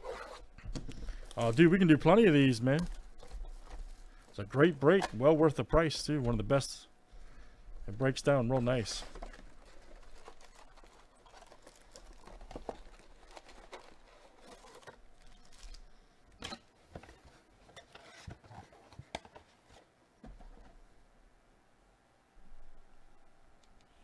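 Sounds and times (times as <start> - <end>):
packaging rustling and crinkling: 0.0 - 6.5, 7.8 - 16.0.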